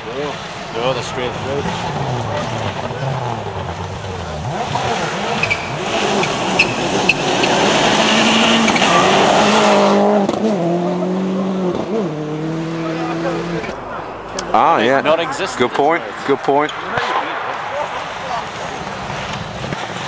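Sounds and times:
rally car engine revving: 0.0s - 20.0s
tyres on dirt: 0.0s - 20.0s.

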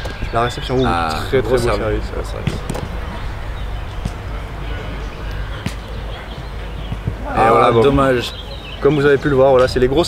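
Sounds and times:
steady low rumble: 0.2s - 7.4s
ball being struck: 2.4s - 3.0s, 5.6s - 6.1s.

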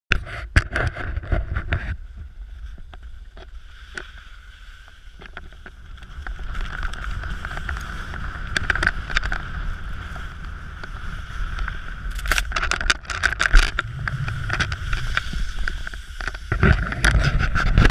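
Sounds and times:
skis scraping over snow: 2.2s - 12.5s, 13.2s - 17.9s
wind on microphone: 5.2s - 17.9s.

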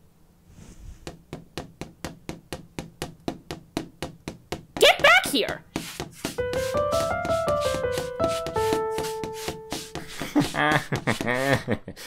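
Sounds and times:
footsteps on hard floor: 0.9s - 11.5s.

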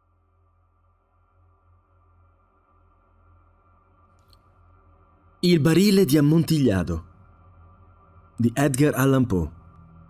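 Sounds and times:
ambient music drone: 0.0s - 10.0s.

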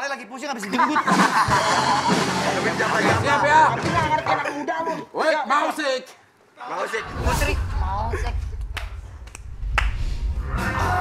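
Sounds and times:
person laughing: 0.7s - 2.6s
low steady rumble: 7.1s - 11.0s.

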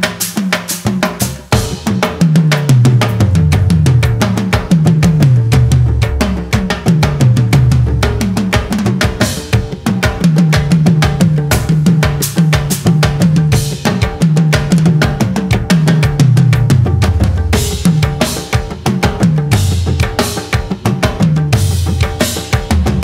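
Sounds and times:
drum kit playing fast groove: 0.0s - 23.0s
music track with bass: 0.0s - 23.0s.

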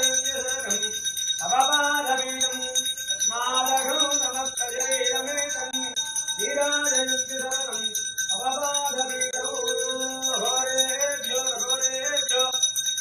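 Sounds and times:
brass hand bell ringing: 0.0s - 13.0s.

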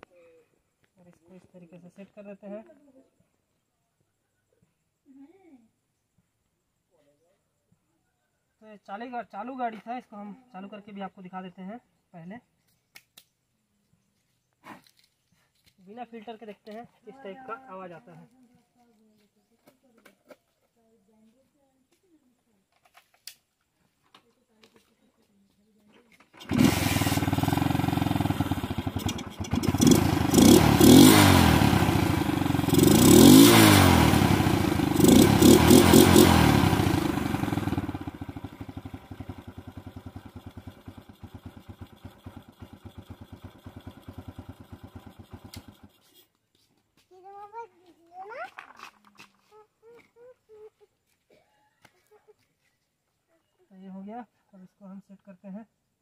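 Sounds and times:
motorcycle engine revving and idling: 26.2s - 46.2s.

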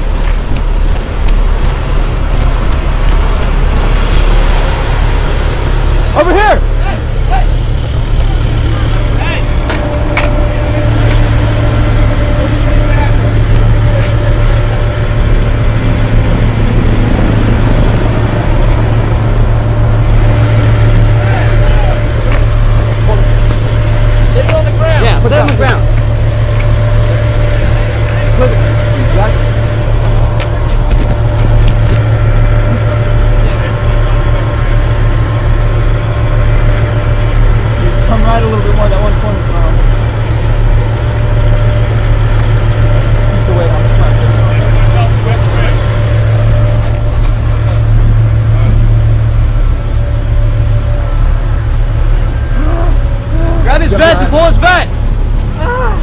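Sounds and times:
distant voices: 0.0s - 56.0s
thin steady hum: 0.0s - 56.0s
vehicle engine droning: 0.0s - 56.0s.

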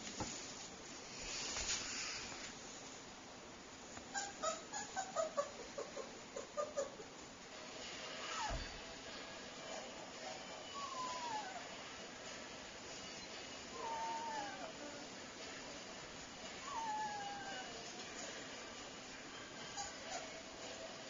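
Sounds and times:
puppy whining: 4.1s - 7.1s, 8.2s - 8.8s, 10.7s - 11.8s, 13.2s - 15.2s, 16.5s - 18.1s, 19.5s - 20.7s.

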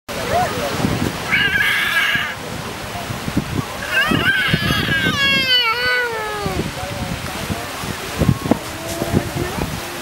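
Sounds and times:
waves rumbling on rocks: 0.1s - 10.0s
sea lion call: 1.2s - 2.4s, 3.8s - 6.7s.

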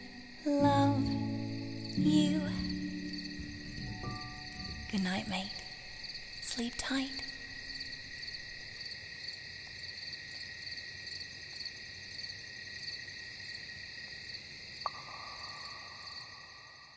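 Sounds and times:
lower steady trill: 0.0s - 8.1s
crickets chirring: 0.0s - 16.9s.

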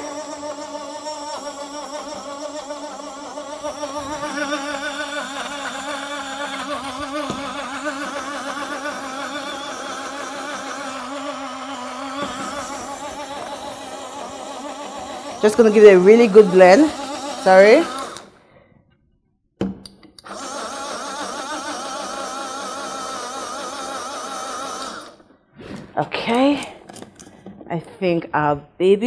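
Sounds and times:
blender motor whine: 0.0s - 18.4s, 20.2s - 25.3s.

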